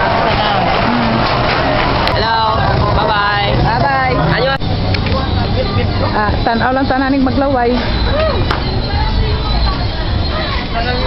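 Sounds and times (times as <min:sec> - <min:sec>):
vehicle engine rumble: 0:00.0 - 0:11.0
voices talking in a market: 0:00.0 - 0:11.0.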